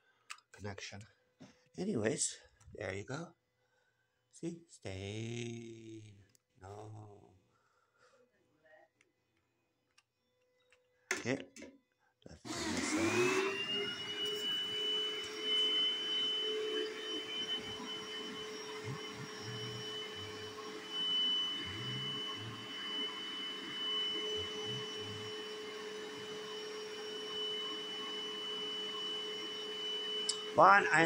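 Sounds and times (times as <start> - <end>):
carpet cleaner motor whine: 12.5 - 31.0.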